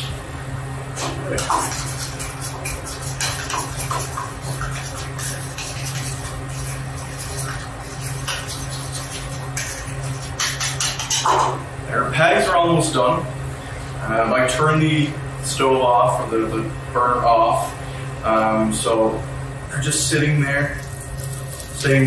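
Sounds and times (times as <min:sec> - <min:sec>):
steady low hum: 0:00.0 - 0:22.0
utensil scraping ceramic bowl: 0:01.3 - 0:11.6
man talking: 0:11.9 - 0:13.3, 0:14.0 - 0:20.8, 0:21.8 - 0:22.0.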